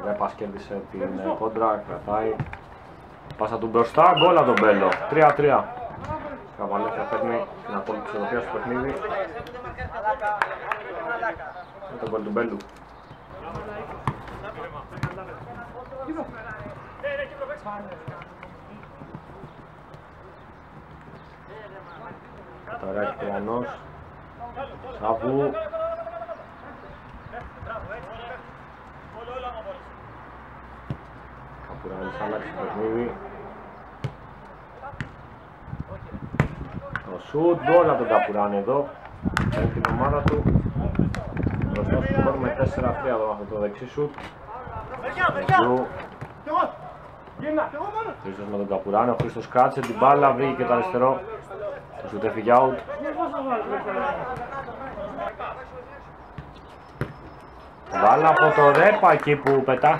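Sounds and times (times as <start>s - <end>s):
ball kicks thudding: 13.4s - 15.3s, 36.3s - 37.0s, 56.4s - 57.2s.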